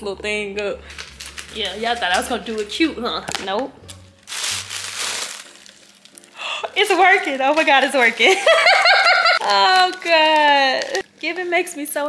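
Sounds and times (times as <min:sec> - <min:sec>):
tissue paper crinkling: 0:00.9 - 0:02.7, 0:04.1 - 0:12.0.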